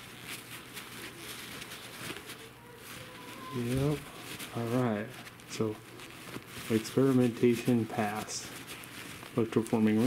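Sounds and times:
paper towel rubbing on metal ring: 0:00.0 - 0:10.0.

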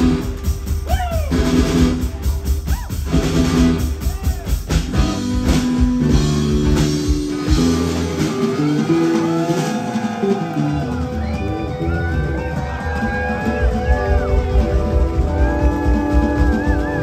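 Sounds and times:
bass guitar: 0:00.0 - 0:17.0
drums: 0:00.0 - 0:17.0
electric lead guitar: 0:04.7 - 0:17.0.

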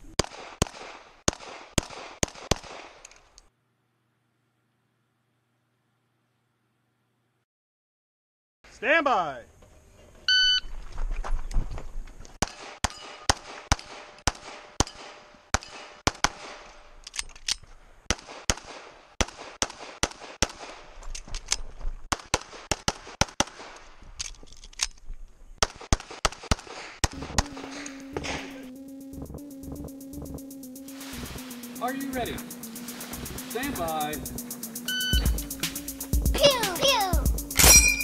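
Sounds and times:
pistol shots: 0:00.2 - 0:03.0, 0:12.4 - 0:16.7
music with steady beat: 0:27.2 - 0:38.0
shot timer beep: 0:34.9 - 0:35.4.

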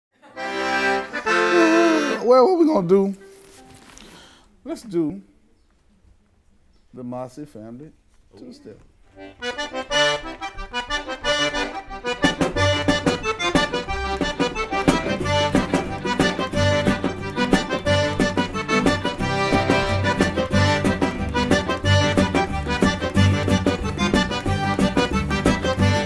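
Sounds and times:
button accordion: 0:00.3 - 0:02.3, 0:09.1 - 0:26.0
fiddle: 0:00.4 - 0:02.2, 0:09.2 - 0:26.0
acoustic guitar: 0:00.5 - 0:04.4, 0:09.6 - 0:26.0
upright bass: 0:11.3 - 0:26.0.

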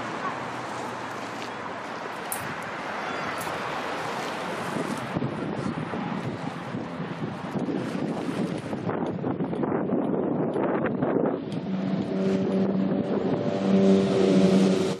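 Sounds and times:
open sea wash: 0:00.0 - 0:15.0
wind buffeting microphone: 0:00.0 - 0:15.0.

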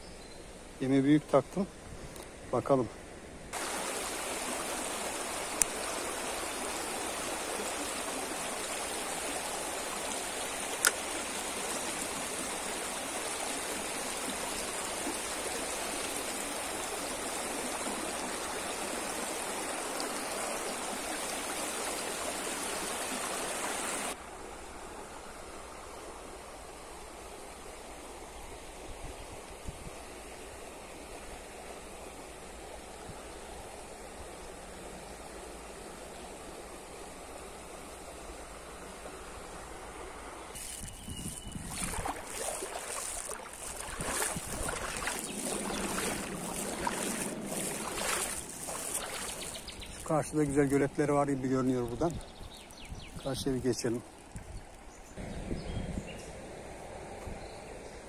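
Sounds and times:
river rushing over stones: 0:03.5 - 0:24.2, 0:40.5 - 0:52.3.

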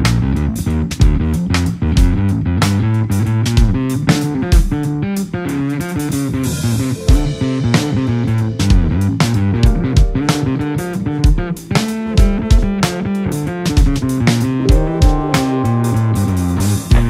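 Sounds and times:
drum kit beat: 0:00.0 - 0:17.0
electric bass line: 0:00.0 - 0:17.0
electric guitar: 0:00.0 - 0:17.0.

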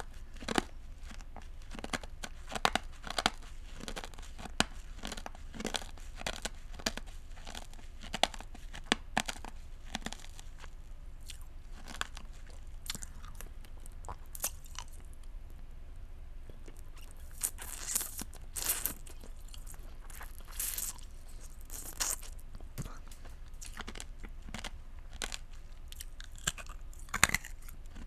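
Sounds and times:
candy crystals crunched by teeth: 0:00.0 - 0:15.2, 0:16.6 - 0:28.0.

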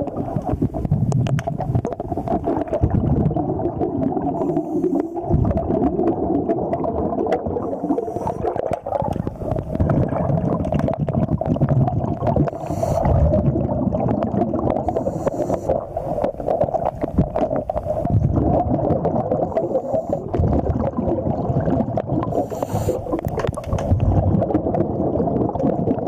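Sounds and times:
underwater scrubbing and scraping: 0:00.0 - 0:26.0
short hissing bursts: 0:12.5 - 0:13.1, 0:14.9 - 0:15.7, 0:22.3 - 0:23.2.

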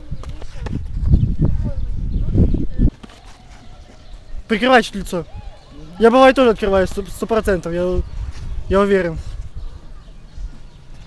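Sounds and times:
shuffling footsteps: 0:02.9 - 0:05.0, 0:05.6 - 0:11.0.

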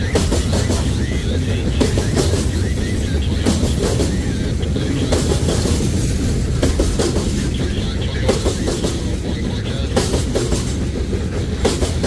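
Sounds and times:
freight train rumbling past: 0:00.0 - 0:12.0.

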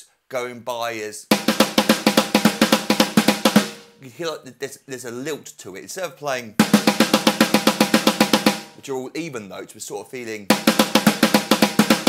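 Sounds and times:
electronic snare pad strokes: 0:01.3 - 0:03.9, 0:06.6 - 0:08.8, 0:10.5 - 0:12.0.

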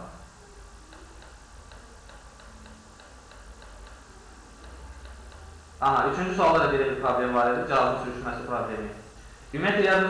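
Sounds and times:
faint low hum: 0:00.0 - 0:10.0
mouse scroll wheel clicking: 0:00.9 - 0:05.6.

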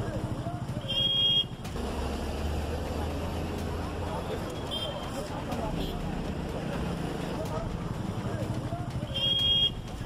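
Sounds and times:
street noise: 0:00.0 - 0:10.0
vehicle engine running: 0:01.5 - 0:04.4.

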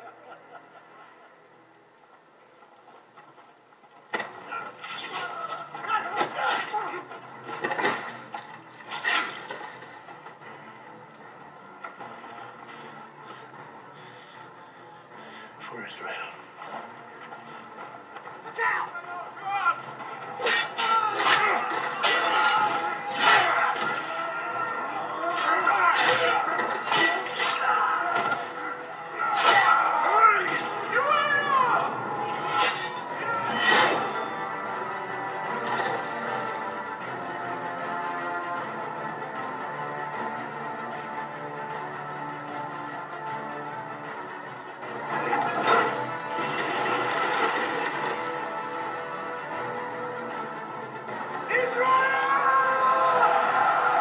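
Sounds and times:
dramatic film music: 0:00.0 - 0:54.0
men shouting: 0:18.5 - 0:32.5, 0:51.4 - 0:54.0.

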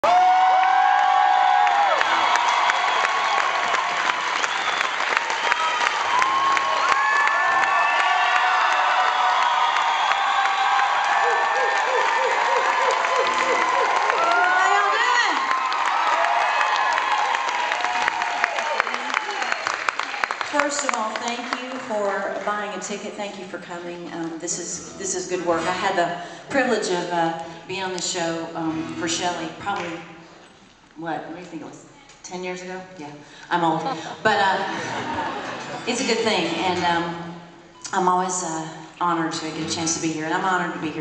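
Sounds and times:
audience cheering and applauding: 0:00.0 - 0:22.5.

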